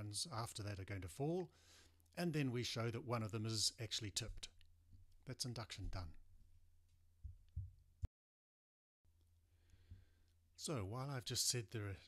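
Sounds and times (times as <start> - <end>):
soft low thumps: 7.2 - 8.1.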